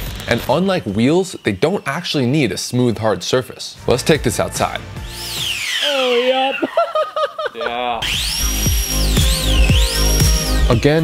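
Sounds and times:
ducted fan jets whining: 0.0s - 3.6s, 4.4s - 6.9s, 8.0s - 11.0s
electronic music with kick drum: 4.1s - 5.6s, 8.0s - 11.0s.

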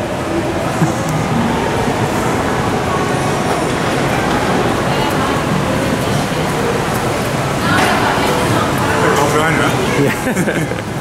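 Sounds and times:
faint voices: 0.0s - 11.0s
rushing noise in parking garage: 0.0s - 11.0s.

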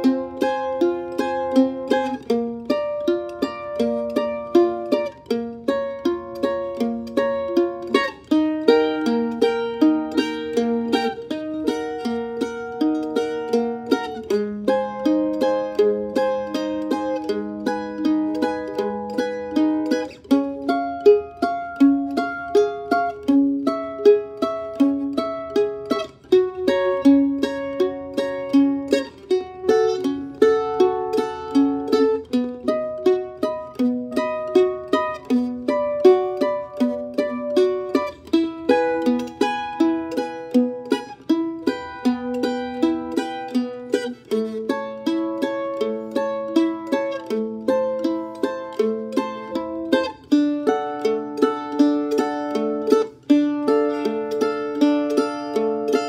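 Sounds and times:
mandolin strummed in boom-chuck pattern: 0.0s - 56.0s.

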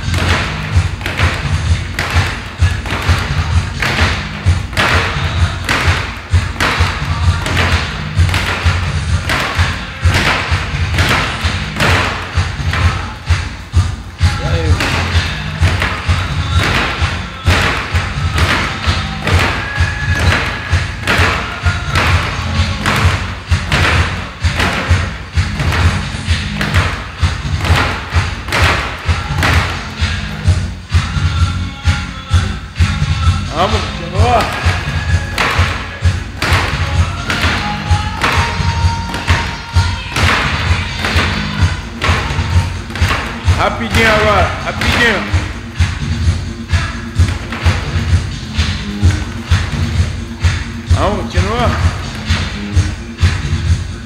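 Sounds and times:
fists thudding on punch ball: 0.0s - 13.3s, 14.2s - 30.1s, 34.2s - 46.0s
music playing: 0.0s - 54.0s.

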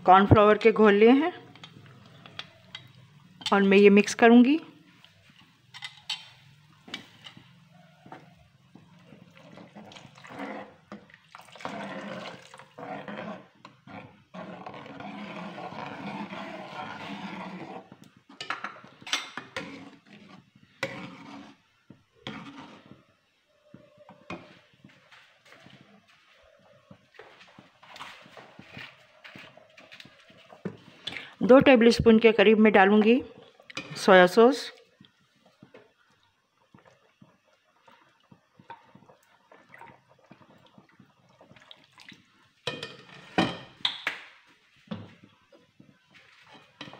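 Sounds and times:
liquid swishing: 8.9s - 18.0s, 19.6s - 23.1s.

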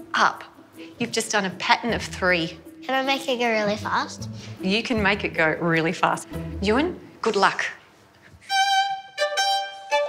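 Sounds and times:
bowed violin notes: 8.4s - 10.0s.

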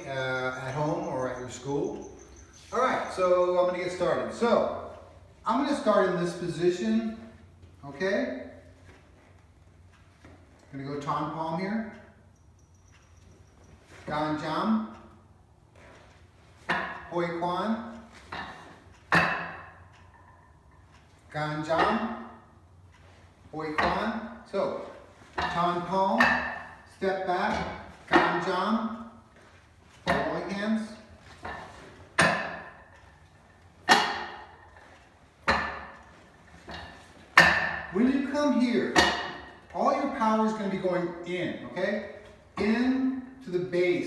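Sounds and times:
arm striking wooden dummy: 16.5s - 20.9s, 21.6s - 22.5s, 23.6s - 40.2s.

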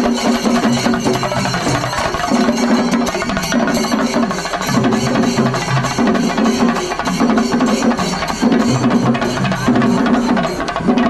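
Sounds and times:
drums beaten with sticks: 0.0s - 11.0s.

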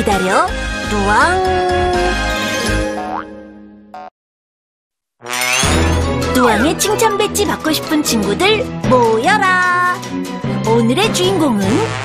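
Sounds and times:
children's background music: 0.0s - 3.3s, 5.3s - 12.0s
cartoon boing sound effect: 3.0s - 3.4s.

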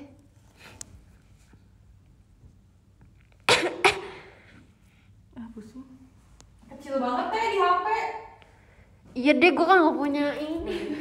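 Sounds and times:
woman coughing: 3.5s - 4.4s.

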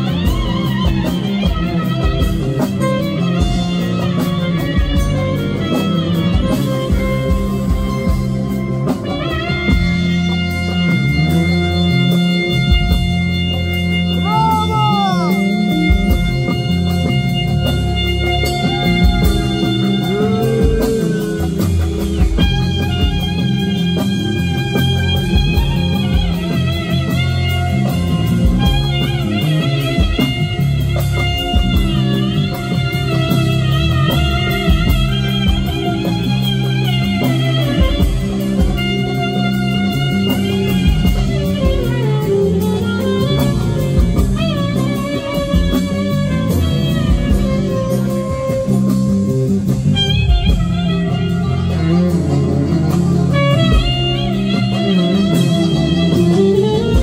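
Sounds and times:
bass guitar: 0.0s - 57.0s
clarinet melody: 0.0s - 57.0s
hand drum: 0.0s - 57.0s
keyboard: 0.0s - 57.0s.

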